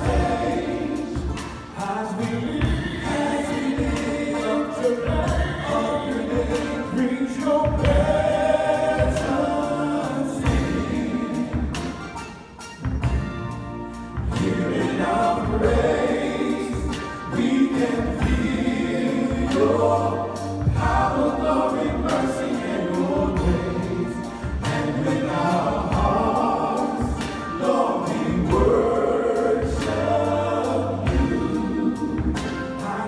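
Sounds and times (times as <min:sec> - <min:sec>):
male vocal group singing in harmony: 0:00.0 - 0:12.2, 0:14.2 - 0:33.0
steady beat: 0:00.0 - 0:33.0.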